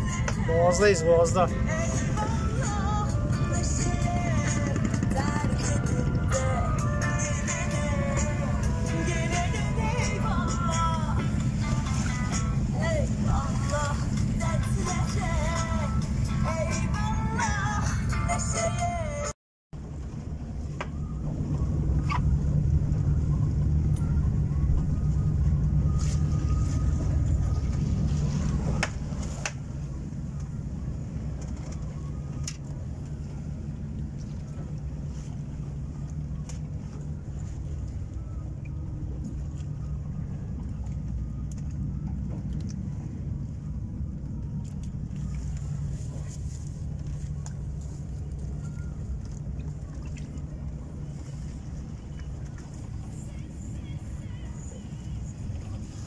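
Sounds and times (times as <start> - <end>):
music: 0.0 - 19.3, 53.1 - 55.6
boat engine droning: 0.0 - 56.0.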